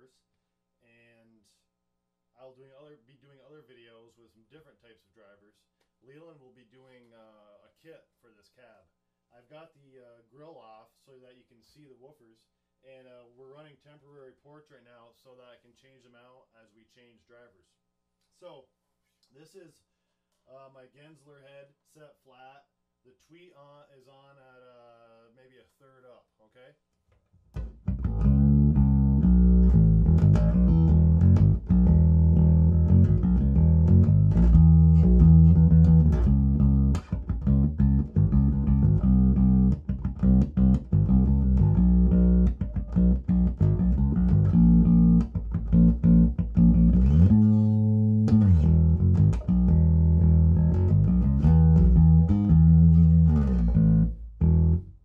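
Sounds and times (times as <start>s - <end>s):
electric bass guitar line: 27.6s - 55.0s.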